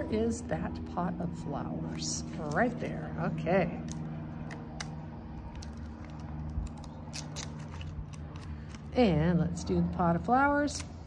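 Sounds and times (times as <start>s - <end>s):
steady low hum: 0.0s - 11.0s
paper sticker being peeled: 3.9s - 8.9s.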